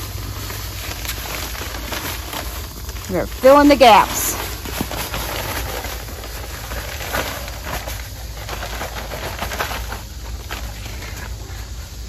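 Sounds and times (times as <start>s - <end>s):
sand pouring onto concrete: 0.0s - 11.2s.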